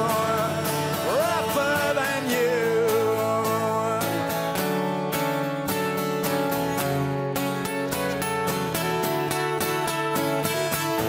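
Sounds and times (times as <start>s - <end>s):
acoustic guitars strummed: 0.0s - 11.0s.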